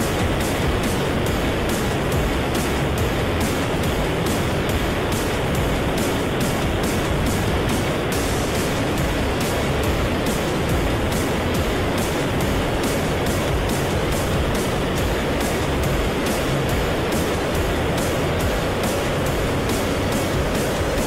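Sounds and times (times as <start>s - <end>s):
light aircraft engine: 0.0s - 21.0s
wind noise: 0.0s - 21.0s.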